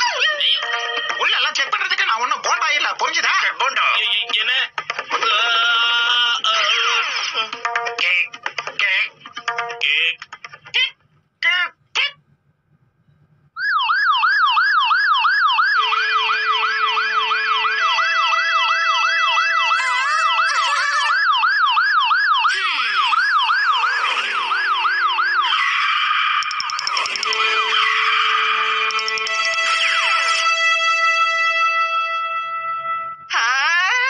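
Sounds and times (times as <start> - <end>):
music: 0.0 - 11.0, 15.8 - 20.5, 26.8 - 34.0
siren-like wail: 13.6 - 31.6.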